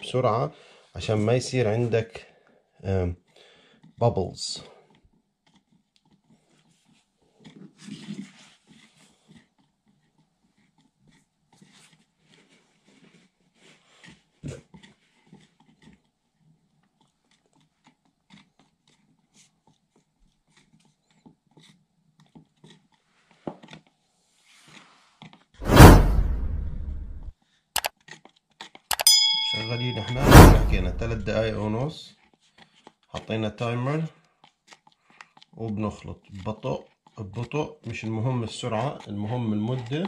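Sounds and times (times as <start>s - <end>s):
rushing burst sound effect: 25.6s - 27.3s, 30.0s - 31.6s
stir stick scraping plastic tub: 30.8s - 32.0s.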